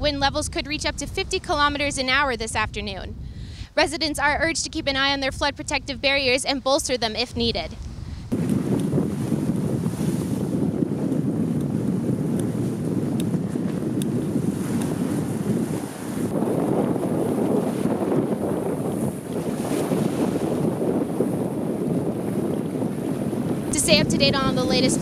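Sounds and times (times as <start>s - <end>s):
wind buffeting microphone: 0.0s - 25.0s
waves splashing: 3.7s - 25.0s.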